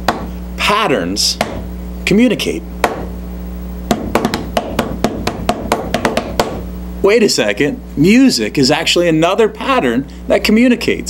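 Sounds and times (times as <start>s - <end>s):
steady low hum: 0.0s - 11.0s
sharp drum-like knocks: 3.9s - 6.6s.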